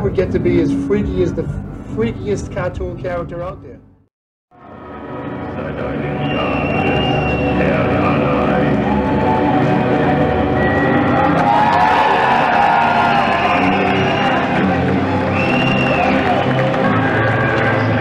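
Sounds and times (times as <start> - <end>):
loud music playing: 4.7 - 18.0
crowd cheering and whooping: 6.2 - 18.0.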